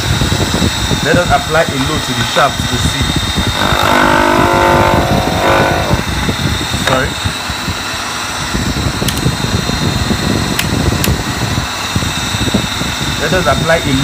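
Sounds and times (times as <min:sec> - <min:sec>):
electric motor running: 0:03.3 - 0:07.2
wood pressed on spinning shaft: 0:03.4 - 0:07.2
held pitched tone: 0:03.5 - 0:07.2.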